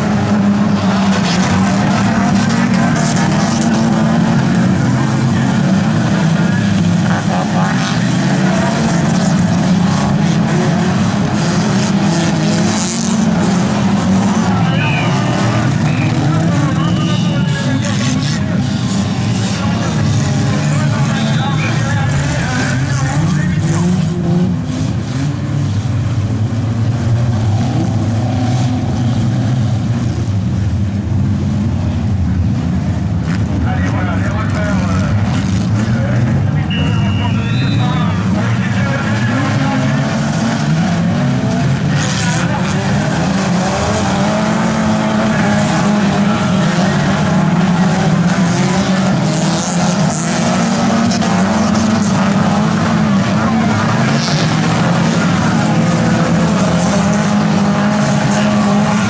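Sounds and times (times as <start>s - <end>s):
stock car engines revving: 0.0s - 59.0s.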